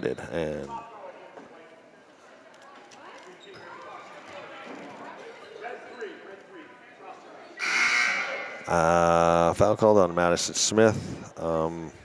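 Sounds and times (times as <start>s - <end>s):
faint gym chatter: 0.0s - 12.0s
referee's whistle blast: 7.6s - 8.5s.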